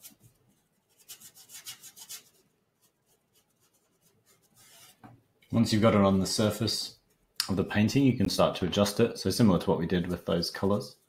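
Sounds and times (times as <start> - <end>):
paintbrush scratching on canvas: 0.0 - 5.1.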